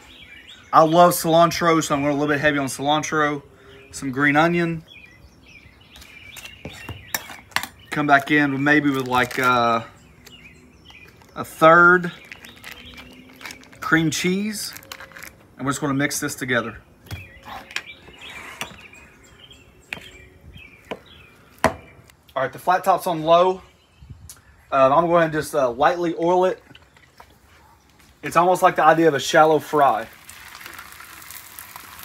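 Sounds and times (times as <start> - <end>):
faint birds chirping: 0.0 - 30.2.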